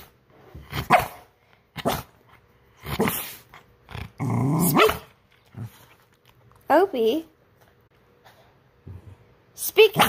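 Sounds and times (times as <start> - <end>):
dog barking: 0.8 - 2.1, 4.6 - 5.1.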